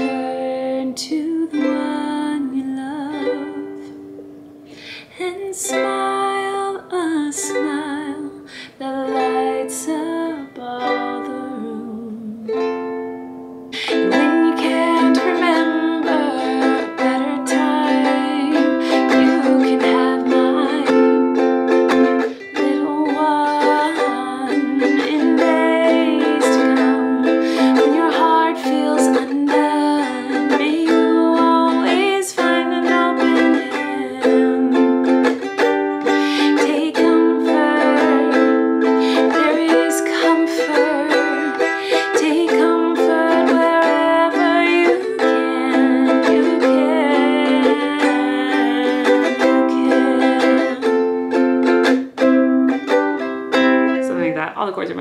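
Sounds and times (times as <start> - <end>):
woman singing: 0.0 - 4.1, 4.8 - 13.0, 13.7 - 52.8
ukulele strummed in chords: 0.0 - 55.0.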